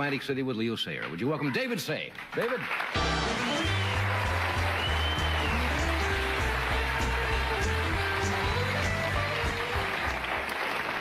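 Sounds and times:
audience applause: 1.4 - 11.0
band playing upbeat music: 3.0 - 10.3.

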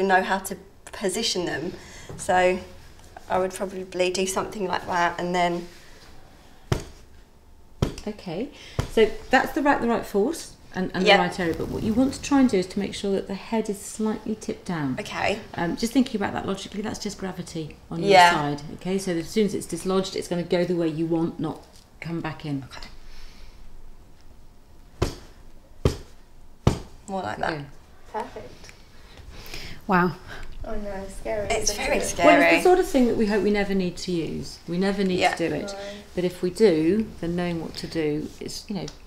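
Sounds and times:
hand thumping on manikin: 25.0 - 27.0.

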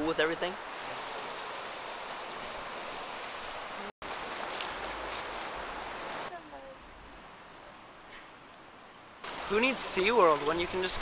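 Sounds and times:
small waves over rocky shore: 9.2 - 11.0.

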